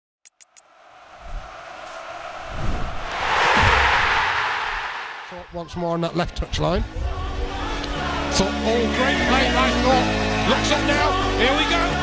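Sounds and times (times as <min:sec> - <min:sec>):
rush of noise: 0:00.6 - 0:05.7
low booms: 0:01.2 - 0:05.7.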